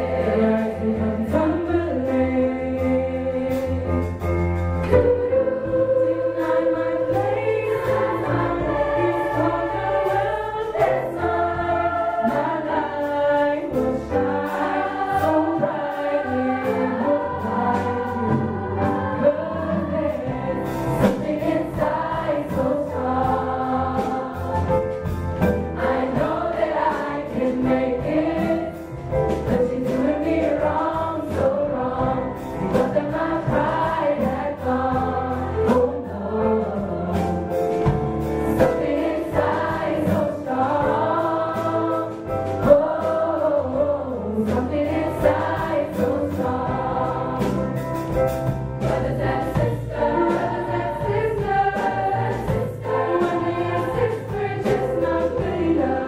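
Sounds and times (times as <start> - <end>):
girls' choir singing in parts: 0.0 - 3.8, 4.8 - 24.8, 25.7 - 37.5, 38.4 - 47.8, 48.8 - 56.0
drum kit: 0.0 - 56.0
piano: 0.0 - 56.0.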